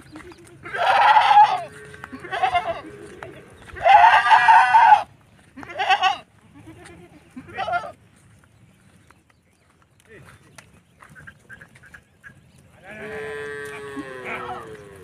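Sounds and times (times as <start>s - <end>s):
goats bleating: 0.1s - 8.0s, 12.8s - 15.0s.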